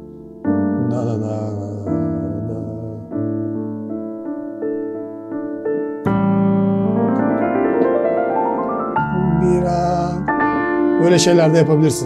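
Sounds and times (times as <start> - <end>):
digital piano chord: 0.0 - 12.0
rising run of piano notes: 0.0 - 12.0.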